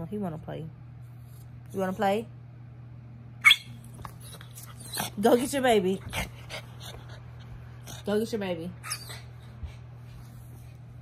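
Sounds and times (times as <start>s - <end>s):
small dog yipping: 3.4s - 5.2s, 8.8s - 9.3s.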